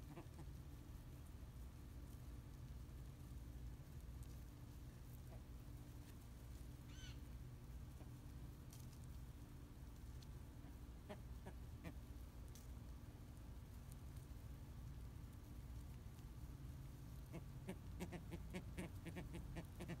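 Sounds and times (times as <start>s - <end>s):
low background rumble: 0.0s - 20.0s
ibises calling: 6.8s - 7.2s.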